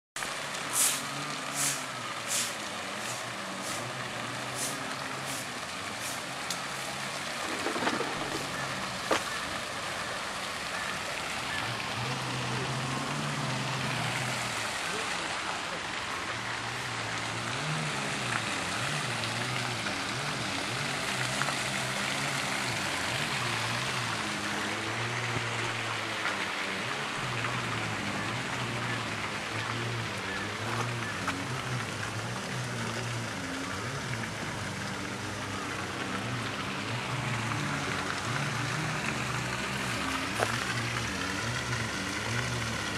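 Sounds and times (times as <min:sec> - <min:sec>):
fountain splashing: 0:00.2 - 0:42.9
people talking: 0:07.5 - 0:19.5.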